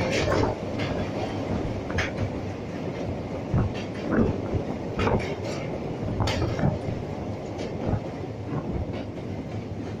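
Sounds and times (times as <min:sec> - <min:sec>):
train rumble on bridge: 0:00.0 - 0:10.0
wheels clacking over rail joints: 0:00.0 - 0:10.0.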